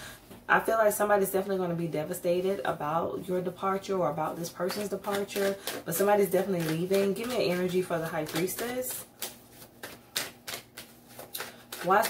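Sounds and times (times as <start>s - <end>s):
cards being shuffled: 4.6s - 12.0s.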